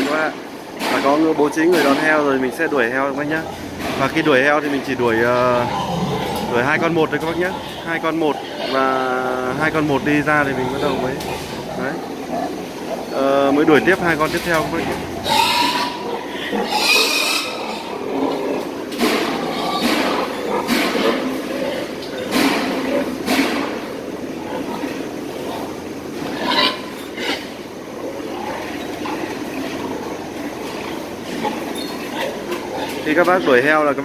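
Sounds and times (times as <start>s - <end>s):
steady barn din: 0.0s - 34.0s.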